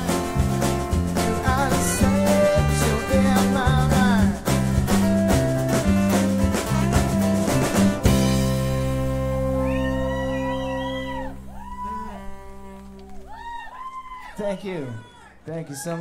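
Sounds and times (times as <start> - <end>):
lead guitar lines: 0.0 - 13.3
rock band playing: 0.0 - 13.5.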